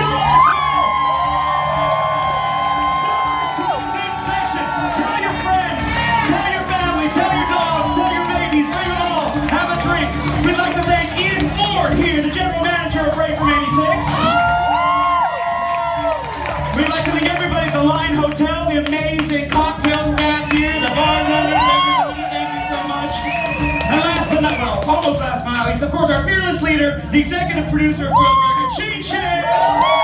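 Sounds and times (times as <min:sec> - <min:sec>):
audience whooping and cheering: 0:00.0 - 0:25.4, 0:28.0 - 0:30.0
live band playing: 0:00.0 - 0:30.0.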